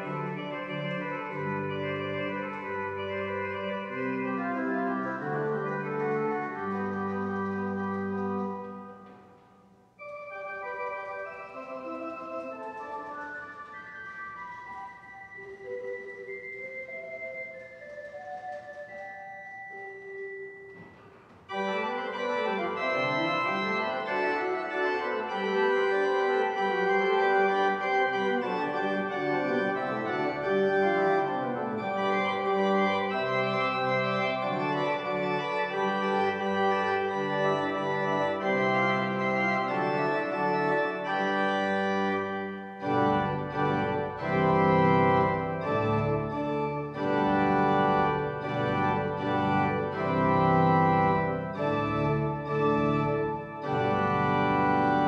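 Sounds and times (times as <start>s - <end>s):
pipe organ playing: 0.0s - 55.0s.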